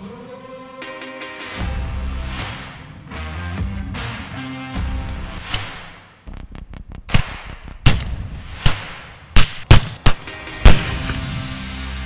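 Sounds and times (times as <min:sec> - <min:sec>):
gunshots: 0:07.1 - 0:11.2.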